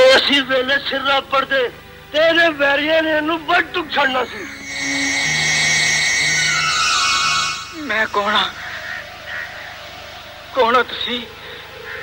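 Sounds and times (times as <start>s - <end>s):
dramatic film score: 0.9s - 12.0s.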